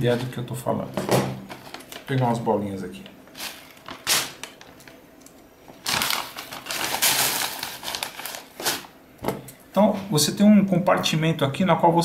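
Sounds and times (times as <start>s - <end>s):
plastic pellets rattling in bag: 5.8s - 8.9s.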